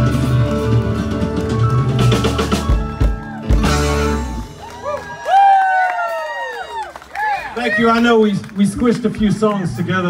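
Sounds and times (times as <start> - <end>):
song: 0.0 - 4.9
people whooping: 1.3 - 3.7, 4.4 - 8.0
man talking over pa: 7.6 - 10.0.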